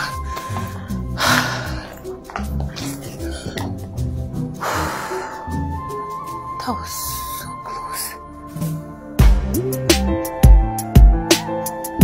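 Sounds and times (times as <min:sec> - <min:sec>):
background music with bass beat: 0:08.4 - 0:12.0.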